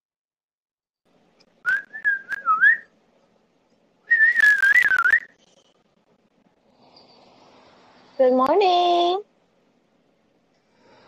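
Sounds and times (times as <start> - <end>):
short wavering whistles: 1.6 - 2.9, 4.1 - 5.4.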